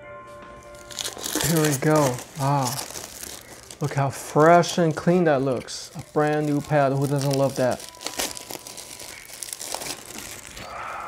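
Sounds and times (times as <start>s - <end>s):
plastic wrapping crinkling: 0.6s - 11.0s.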